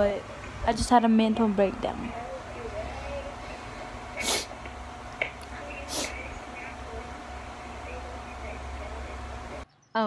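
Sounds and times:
person sniffling: 3.5 - 4.6, 5.8 - 6.2.

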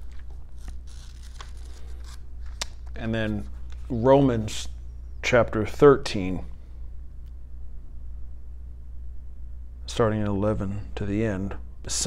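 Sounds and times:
paper crackles: 0.0 - 4.0
paper pages rustling: 0.0 - 4.0
low steady hum: 0.0 - 12.0.

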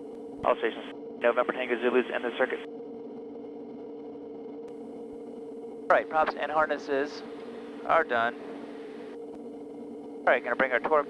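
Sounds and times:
turboprop engine droning: 0.0 - 11.0.

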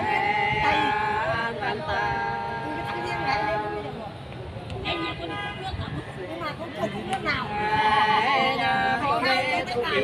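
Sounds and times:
low voices talking: 0.0 - 10.0
street traffic: 0.0 - 10.0
car horn: 4.8 - 5.8.

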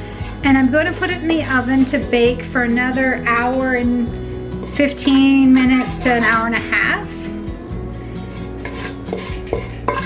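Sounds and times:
background music: 0.0 - 10.0
wooden spoon scraping a pot: 4.0 - 7.0, 8.2 - 10.0.

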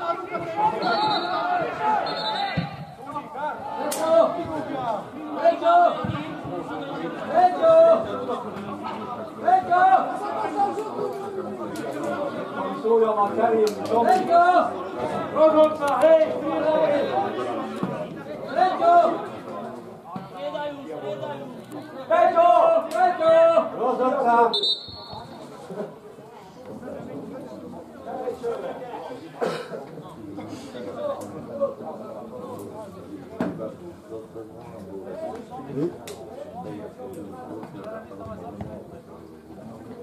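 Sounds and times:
indistinct chatter of voices: 0.0 - 40.0
person coughing: 29.4 - 29.8.

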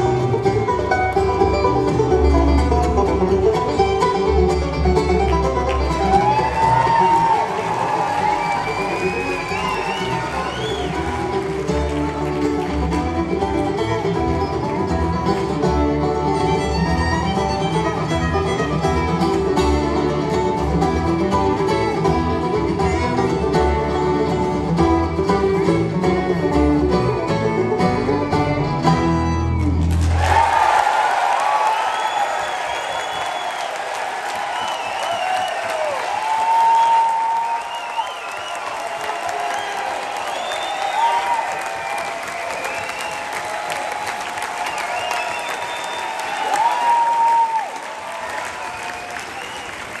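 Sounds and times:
audience applauding and cheering: 0.0 - 23.4, 29.6 - 50.0
bluegrass band playing: 0.0 - 30.1
shrill whistles: 8.2 - 11.2, 31.6 - 43.5, 44.6 - 47.5, 48.4 - 50.0.

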